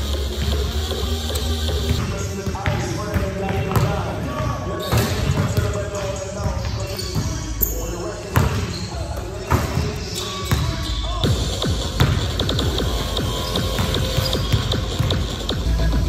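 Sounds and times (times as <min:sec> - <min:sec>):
music: 0:00.0 - 0:02.0, 0:09.5 - 0:16.0
voices: 0:02.0 - 0:11.6
basketball bouncing on hardwood: 0:11.2 - 0:15.6.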